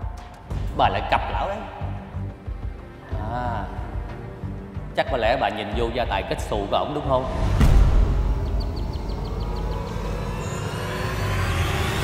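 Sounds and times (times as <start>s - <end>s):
low drone: 7.2s - 12.0s.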